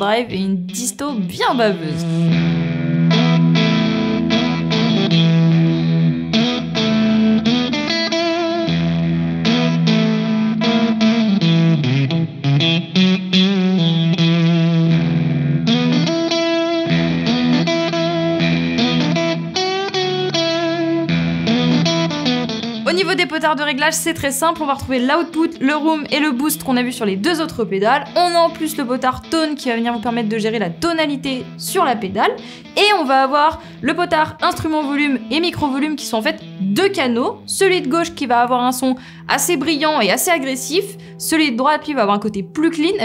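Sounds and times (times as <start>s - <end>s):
overdriven electric guitar riff: 0.0s - 43.0s.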